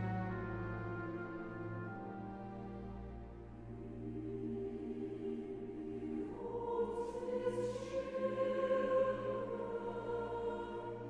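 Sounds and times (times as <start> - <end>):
orchestra playing: 0.0 - 3.8
mixed chorus singing: 3.5 - 11.0.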